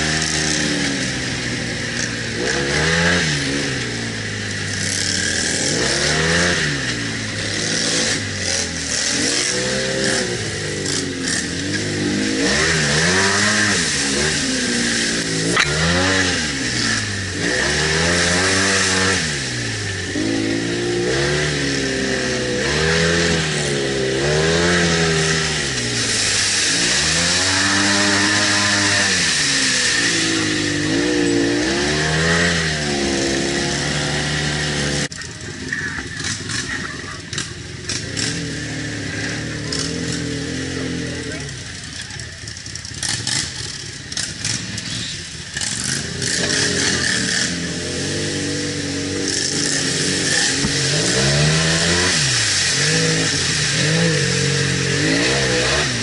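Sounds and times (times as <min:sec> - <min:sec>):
atv engine revving: 0:00.0 - 0:56.0.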